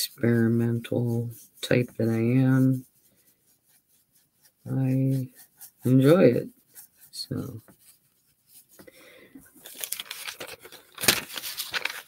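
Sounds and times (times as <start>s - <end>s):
paintbrush scrubbing paper: 0.0s - 12.0s
paper rustling: 3.7s - 12.0s.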